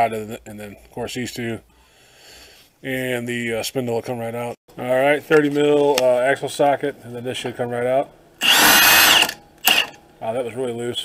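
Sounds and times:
impact wrench spinning nut: 8.4 - 10.0.

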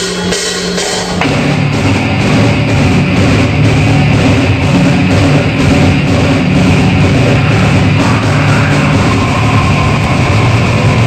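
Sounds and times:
extreme metal band playing: 0.0 - 11.0.

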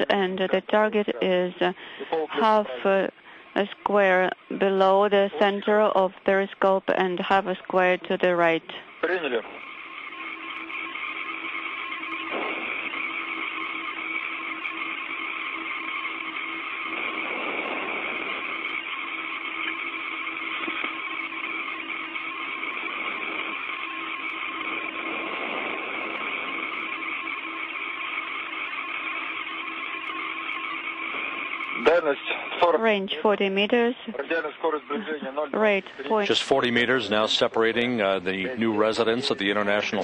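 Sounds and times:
radio link hiss: 0.0 - 40.0
steady hum: 0.0 - 40.0.

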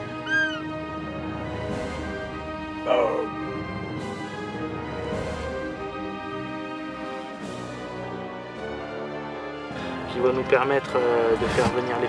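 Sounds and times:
deer calls: 0.0 - 0.8
background music: 0.0 - 12.0.

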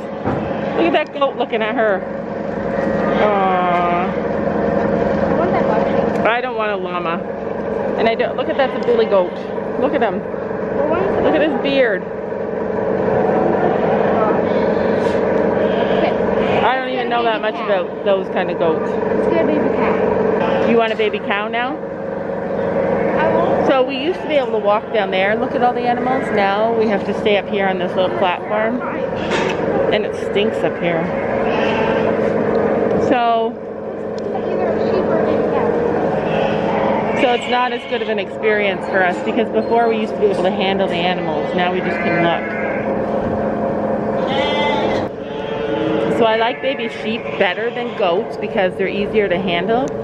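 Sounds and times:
loud mechanical hum: 0.0 - 50.0
chatter of many voices: 13.2 - 21.7, 23.0 - 33.6, 34.2 - 42.7.

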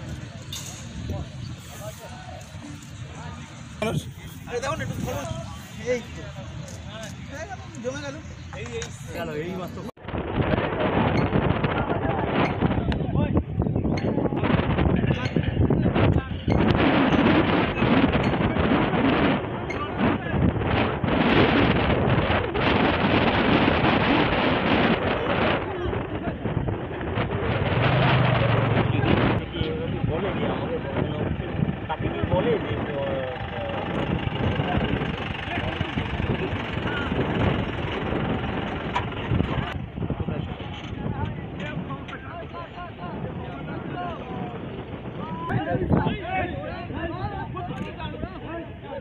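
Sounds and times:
men talking and calling: 0.0 - 10.0, 11.0 - 49.0
dense outdoor rumble: 0.0 - 49.0
wind buffeting microphone: 0.0 - 49.0.

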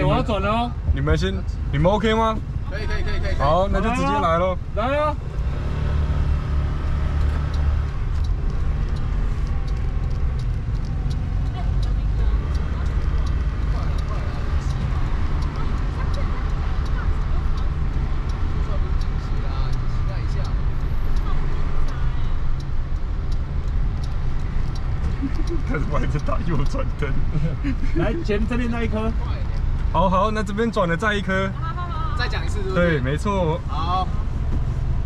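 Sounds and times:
car interior road rumble: 0.0 - 35.0
faint clicks: 6.7 - 26.9.

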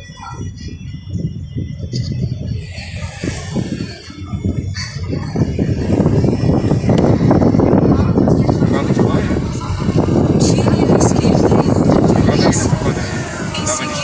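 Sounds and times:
car road and wind noise: 0.0 - 14.0.

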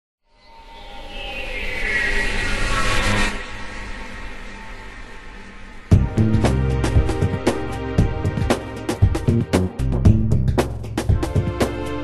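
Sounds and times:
music: 2.9 - 12.0.

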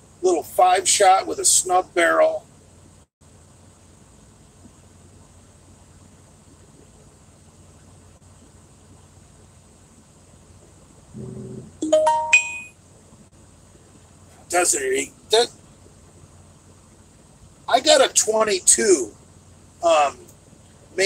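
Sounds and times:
low hum inside truck cab: 0.0 - 21.0
bright electronic chime: 11.8 - 12.7.

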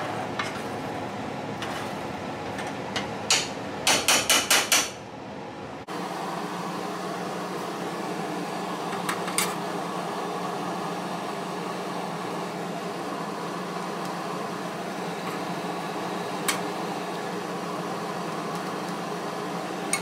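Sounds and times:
fan-like mechanical hum: 0.0 - 20.0.

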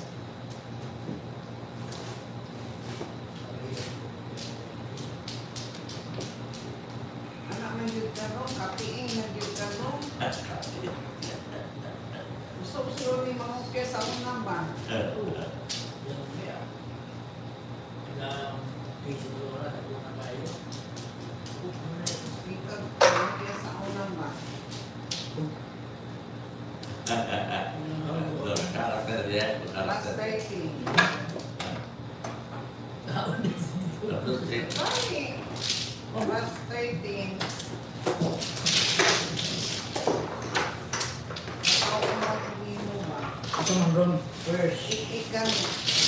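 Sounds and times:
mahjong tiles clattering: 45.4 - 46.0.

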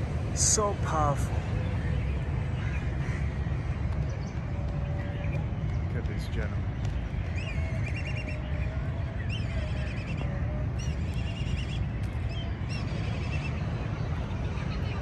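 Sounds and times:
kites calling: 0.0 - 15.0.

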